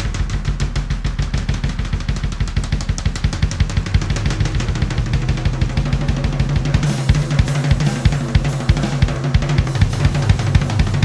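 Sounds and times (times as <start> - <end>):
drum kit fast groove: 0.0 - 11.0.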